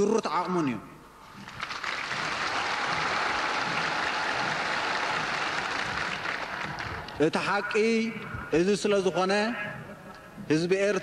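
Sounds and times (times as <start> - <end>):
crowd applauding: 1.3 - 7.3.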